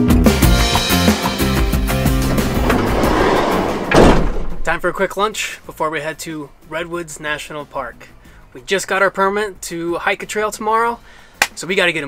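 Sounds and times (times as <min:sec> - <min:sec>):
noisy rushing sound: 0:01.9 - 0:05.2
sudden loud hit: 0:02.0 - 0:05.1.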